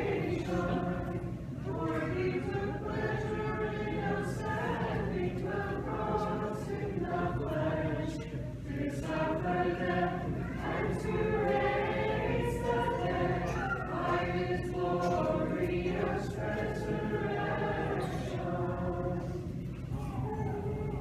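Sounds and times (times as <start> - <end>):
choir chanting unaccompanied: 0.0 - 19.5.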